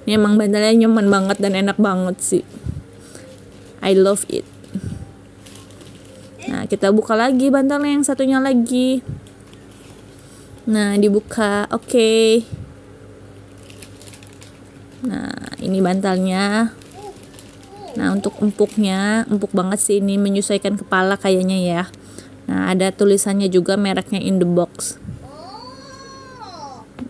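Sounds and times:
low steady hum: 0:00.0 - 0:27.0
plastic bag crinkling: 0:01.0 - 0:07.4, 0:09.2 - 0:10.7, 0:13.3 - 0:21.3.

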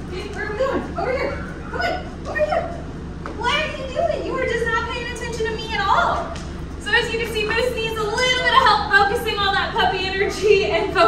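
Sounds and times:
steady low hum: 0:00.0 - 0:11.0
woman speaking in sing-song voice: 0:00.1 - 0:02.7, 0:03.4 - 0:11.0.

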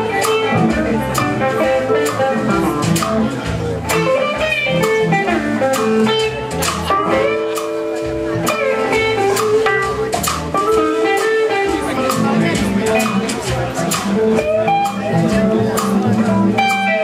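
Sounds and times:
lead guitar line: 0:00.0 - 0:17.0
live blues band playing: 0:00.0 - 0:17.0.

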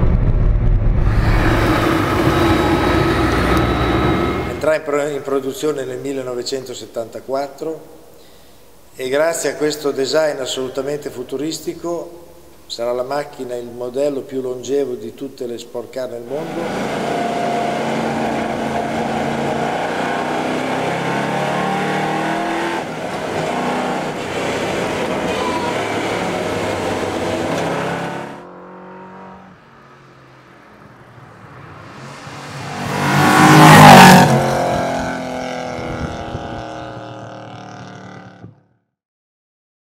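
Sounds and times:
car passing by: 0:01.0 - 0:04.8, 0:16.3 - 0:35.9
sports car engine running hard: 0:01.2 - 0:04.6.

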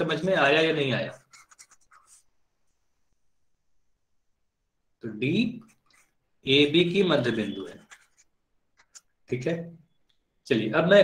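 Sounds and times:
pen scratching while writing: 0:01.1 - 0:02.3, 0:05.6 - 0:06.2, 0:07.3 - 0:09.4
man speaking: 0:05.0 - 0:05.8, 0:06.4 - 0:07.9, 0:09.3 - 0:09.8.

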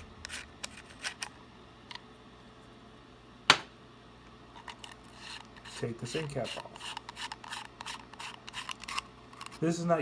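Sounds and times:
threads scraping and clicking: 0:00.0 - 0:01.4, 0:04.5 - 0:09.7.

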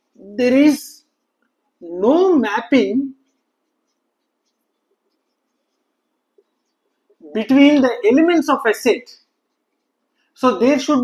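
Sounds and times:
marker writing on whiteboard: 0:00.0 - 0:11.0.

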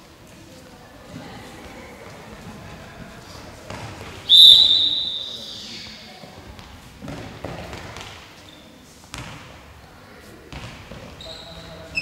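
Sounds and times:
referee's whistle blast: 0:04.3 - 0:05.6.

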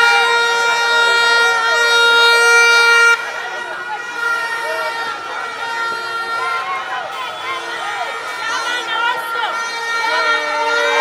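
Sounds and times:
horn blast: 0:00.0 - 0:11.0
street crowd chatter and shouting: 0:00.0 - 0:11.0.

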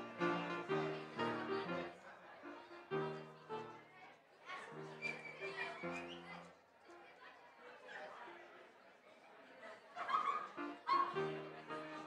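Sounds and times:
keyboard chord: 0:00.0 - 0:01.9
high-pitched yelps: 0:10.9 - 0:11.1.

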